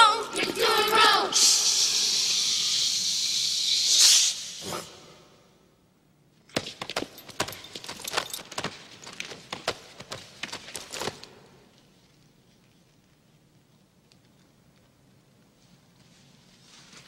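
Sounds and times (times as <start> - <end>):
loud steady hiss: 1.3 - 5.4.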